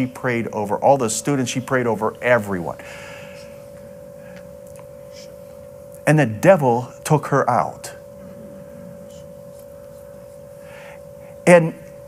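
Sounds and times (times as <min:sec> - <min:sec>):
steady mid-pitch tone: 0:00.0 - 0:12.0.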